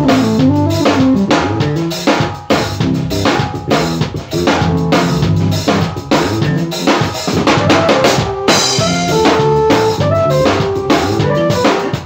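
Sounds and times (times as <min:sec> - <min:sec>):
drum kit beat: 0:00.0 - 0:12.0
electric bass line: 0:00.0 - 0:12.0
keyboard chords: 0:00.0 - 0:12.0.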